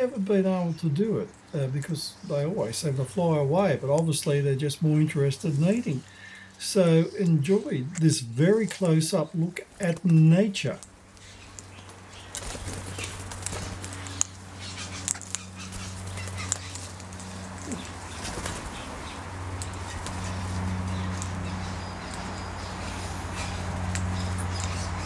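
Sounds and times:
steady low hum: 0.0 - 25.0
parrots pecking seed on metal: 10.8 - 25.0.

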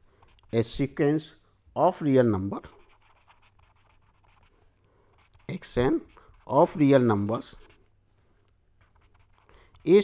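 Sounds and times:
pen scratching on paper: 0.0 - 0.8, 2.7 - 7.9, 8.8 - 10.0.

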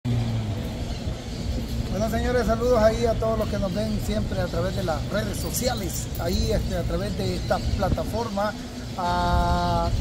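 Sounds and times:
voices of passers-by: 0.1 - 10.0.

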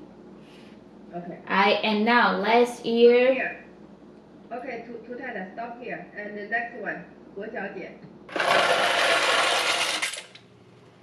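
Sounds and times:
dry pasta rattling into metal pot: 8.3 - 10.4.

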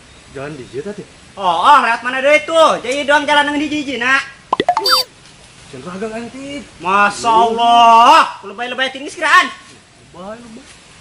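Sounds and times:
comic plop sound effect: 4.6 - 5.1.

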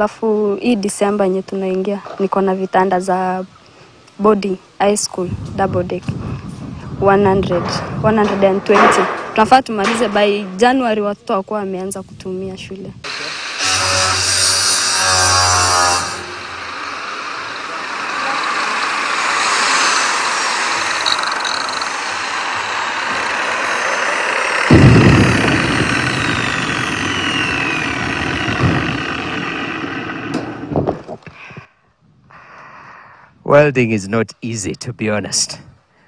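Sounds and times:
arc welding: 13.1 - 17.7, 18.8 - 30.7
angle grinder grinding metal: 13.1 - 30.7.

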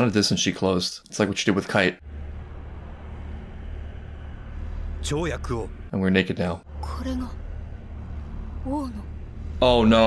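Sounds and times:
steady low rumble: 2.0 - 10.0.

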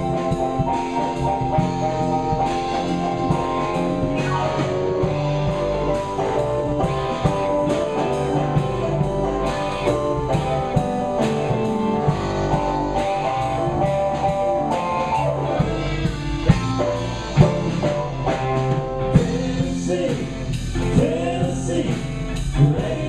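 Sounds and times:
live rock band playing: 0.0 - 23.0
person singing: 19.1 - 23.0.

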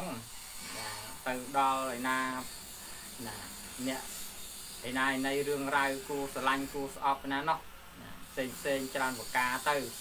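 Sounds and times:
steady high hiss: 0.0 - 10.0.

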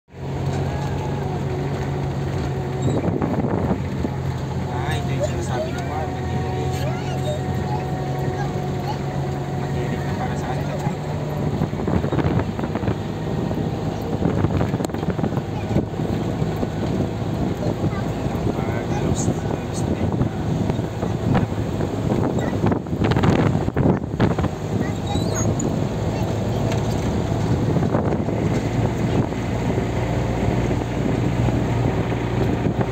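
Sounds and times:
vehicle engine hum: 0.0 - 32.9
road noise: 0.1 - 32.9
wind buffeting microphone: 0.2 - 32.9.

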